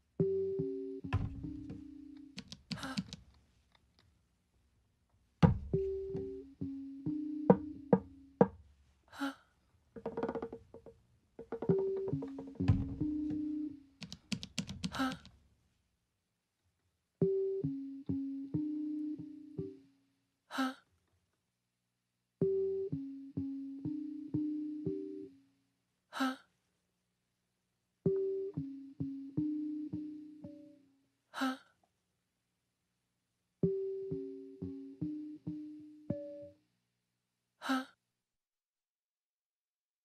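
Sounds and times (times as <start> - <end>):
plucked keyboard-like music: 0.2 - 2.6, 5.5 - 8.5, 11.5 - 14.5, 17.2 - 19.9, 22.4 - 25.4, 28.1 - 30.8, 33.6 - 36.6
person sighing: 9.1 - 9.5, 14.9 - 15.3, 31.4 - 31.8, 37.6 - 38.0.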